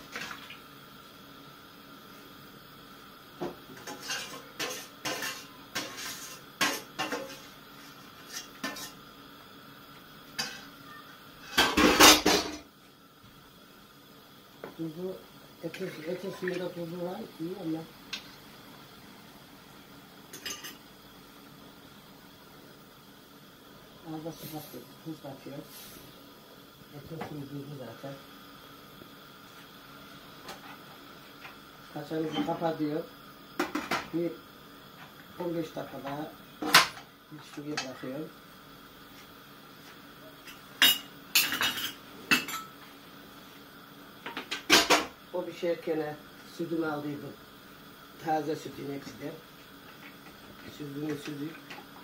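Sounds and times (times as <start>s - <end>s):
pots and cutlery clanking in sink: 3.5s - 7.5s, 8.2s - 9.0s, 11.4s - 12.7s, 20.3s - 20.8s, 33.6s - 34.1s, 35.9s - 37.9s, 40.4s - 42.8s, 44.2s - 45.2s
kitchenware clinking on a pot: 20.3s - 20.8s, 40.5s - 42.8s.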